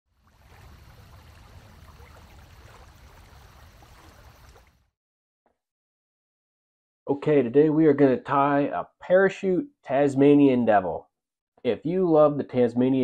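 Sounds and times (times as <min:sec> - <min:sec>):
river flowing over riffles: 0:00.2 - 0:04.8.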